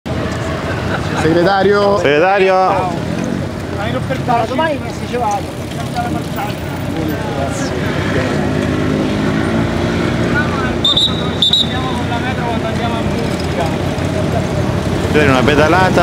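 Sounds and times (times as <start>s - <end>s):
vehicle engine humming: 0.1s - 16.0s
scattered voices: 0.2s - 16.0s.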